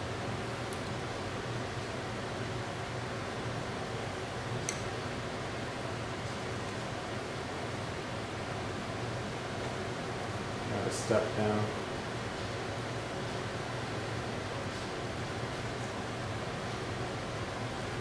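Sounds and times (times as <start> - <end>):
room noise with low hum: 0.0 - 18.0
small sharp click: 4.6 - 4.9.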